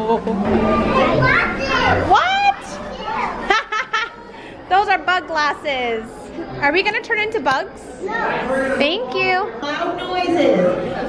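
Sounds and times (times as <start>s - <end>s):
children chattering and squealing: 0.2s - 11.0s.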